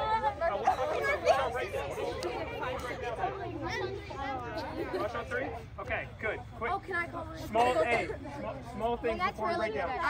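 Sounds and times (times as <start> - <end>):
girls chattering: 0.0 - 5.8, 6.4 - 10.0.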